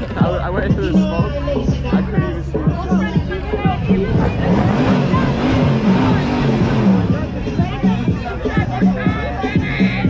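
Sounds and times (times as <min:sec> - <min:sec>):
crowd voices: 0:00.0 - 0:10.0
car engine revving high: 0:03.1 - 0:08.3.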